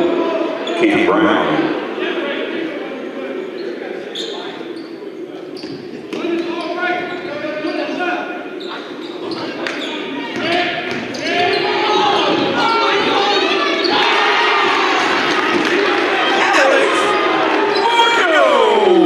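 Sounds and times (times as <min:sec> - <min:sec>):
people shouting: 0:11.2 - 0:19.0.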